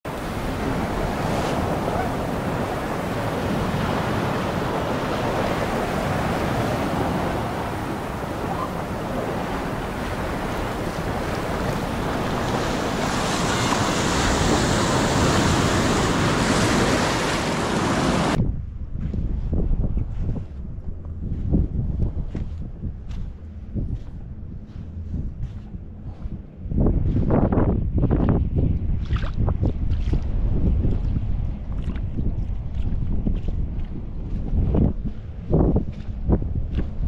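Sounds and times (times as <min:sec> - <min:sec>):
wind rumbling on microphone: 0:00.0 - 0:37.0
surf breaking on beach: 0:00.1 - 0:18.4.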